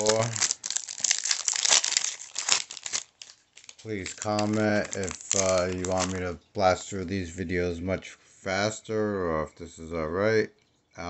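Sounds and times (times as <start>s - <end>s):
foil wrapper crinkling: 0.0s - 6.3s.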